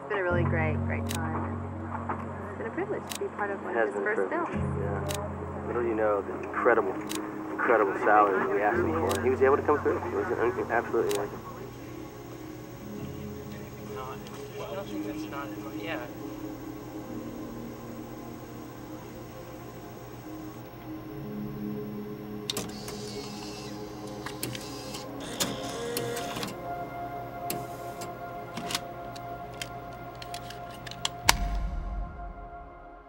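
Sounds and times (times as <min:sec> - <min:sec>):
soft background music: 0:00.0 - 0:33.0
videotape deck mechanism whirring: 0:22.2 - 0:26.6
plastic cassette clicks: 0:28.5 - 0:31.4
low thump: 0:31.3 - 0:33.0.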